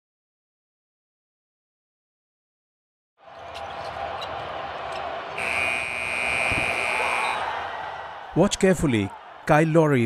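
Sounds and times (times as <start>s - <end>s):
court noise and voices: 3.2s - 10.0s
buzzer steady tone: 5.4s - 7.4s.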